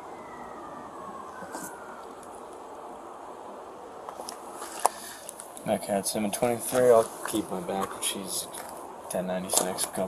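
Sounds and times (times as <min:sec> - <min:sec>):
faint tone gliding downward: 0:00.0 - 0:02.5
low background noise: 0:00.0 - 0:10.0.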